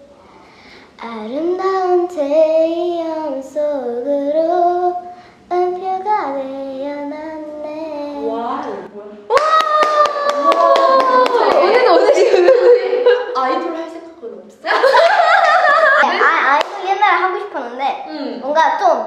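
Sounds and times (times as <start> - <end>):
girl singing unaccompanied: 0.9 - 8.9
hand clapping: 9.4 - 12.0, 16.6 - 16.9.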